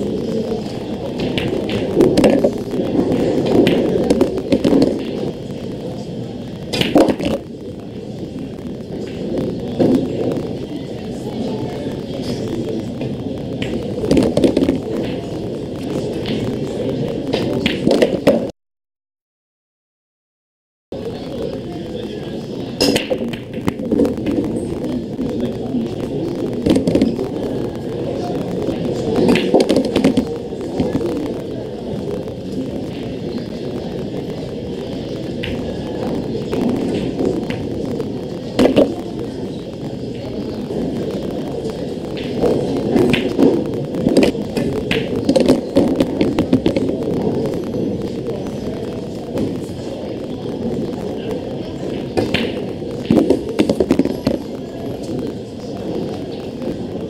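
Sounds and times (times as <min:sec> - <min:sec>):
low hall ambience: 0:00.0 - 0:18.5, 0:20.9 - 0:57.0
pool cue striking ball: 0:01.2 - 0:05.2.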